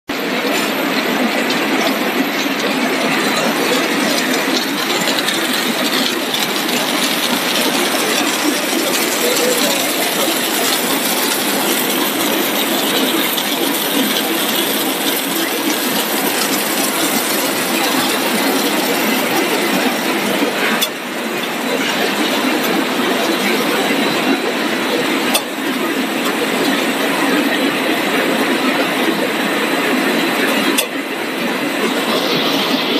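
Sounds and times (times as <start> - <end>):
production line machinery clatter: 0.1 - 32.9.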